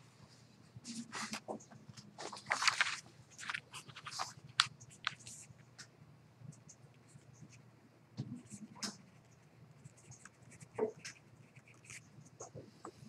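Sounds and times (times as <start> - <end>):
low steady hum: 0.0 - 13.0
small irregular clicks and rustles: 0.9 - 7.6.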